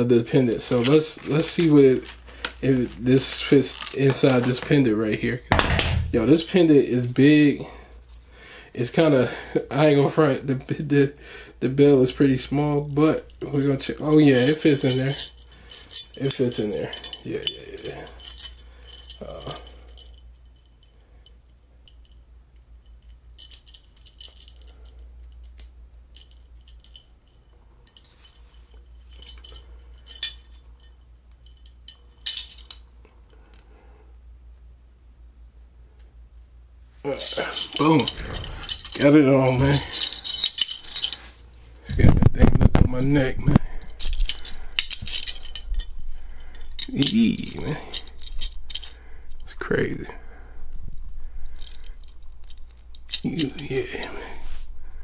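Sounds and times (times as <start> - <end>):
metal chain links clinking: 0.0 - 9.4, 11.8 - 22.2, 22.8 - 32.9, 37.1 - 55.0.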